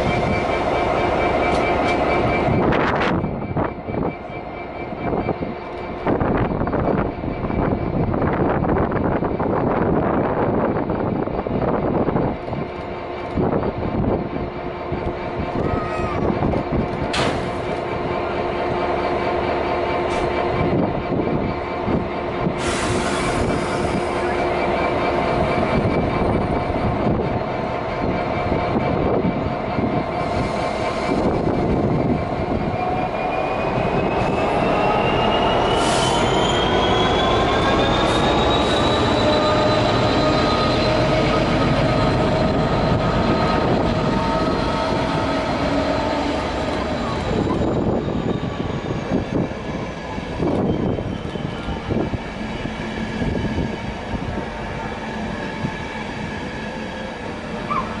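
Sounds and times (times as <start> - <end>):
rail noise hum: 0.0 - 58.0
trains passing: 0.0 - 58.0
rising whine: 23.2 - 58.0.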